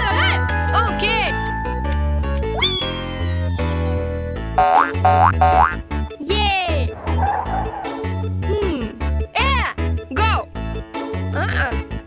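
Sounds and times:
cartoon music with bass line: 0:00.0 - 0:12.0.

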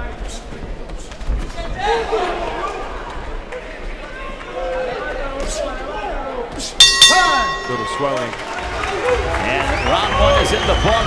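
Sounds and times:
boxing ring bell ringing: 0:06.8 - 0:08.8.

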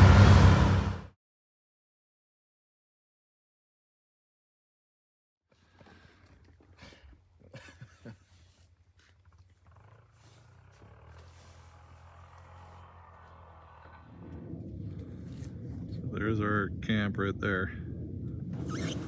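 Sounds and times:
atv engine running: 0:00.0 - 0:01.1, 0:09.0 - 0:15.9.

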